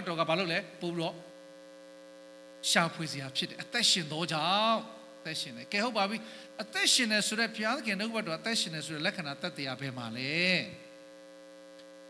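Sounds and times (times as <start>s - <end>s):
man's amplified voice: 0.0s - 1.3s, 2.6s - 10.8s
electrical hum from amplifier: 0.0s - 12.0s.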